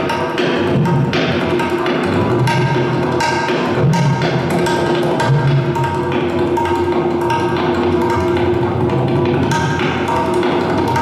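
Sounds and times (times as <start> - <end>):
plucked rubab: 0.0 - 11.0
tabla drums played fast: 0.0 - 11.0.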